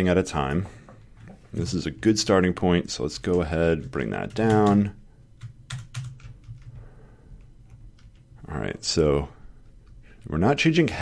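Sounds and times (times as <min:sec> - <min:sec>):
computer keyboard keys clicking: 0:03.2 - 0:06.8, 0:07.4 - 0:08.3.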